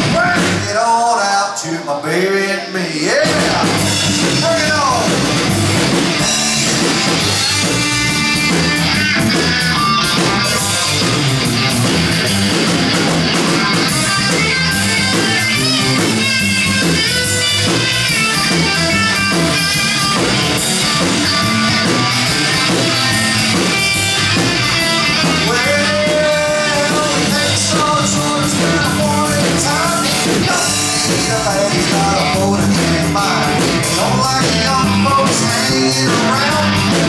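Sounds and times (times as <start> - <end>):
drum kit: 0.0 - 1.0, 3.0 - 37.0
bass guitar: 0.0 - 37.0
electric guitar solo: 3.2 - 27.3.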